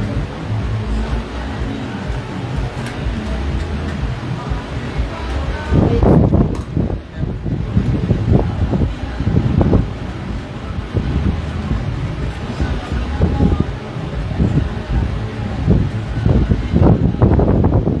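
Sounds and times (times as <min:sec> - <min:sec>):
indistinct voices: 0:00.0 - 0:18.0
low rumble: 0:00.0 - 0:18.0
music: 0:00.0 - 0:18.0.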